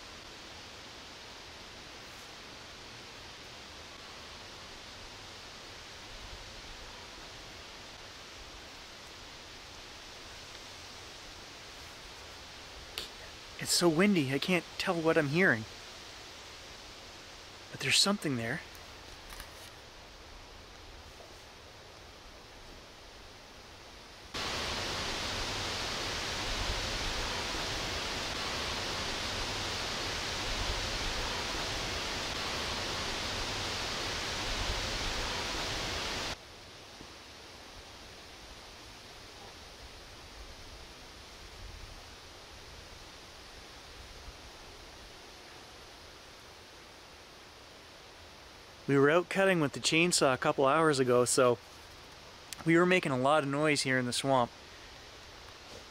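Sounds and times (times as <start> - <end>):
wind hissing through trees: 0.0 - 55.9.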